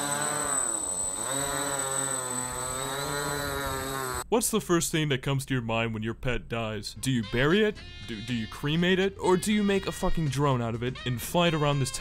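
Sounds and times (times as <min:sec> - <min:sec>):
quadcopter propellers buzzing: 0:00.0 - 0:04.2.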